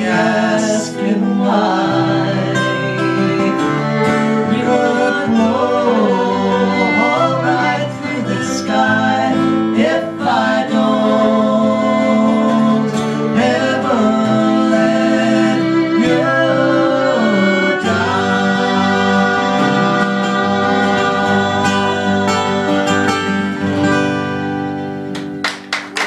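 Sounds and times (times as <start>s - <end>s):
woman singing: 0.0s - 23.3s
fiddle: 0.0s - 25.3s
strummed acoustic guitars: 0.0s - 26.0s.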